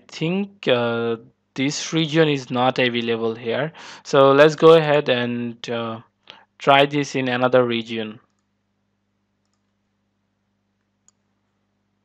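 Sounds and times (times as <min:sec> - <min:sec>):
mouse clicks: 0:11.0 - 0:11.3.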